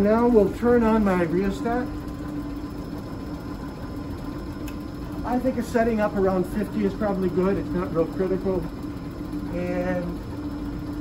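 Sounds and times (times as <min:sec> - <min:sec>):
vacuum pump humming: 0:00.0 - 0:11.0.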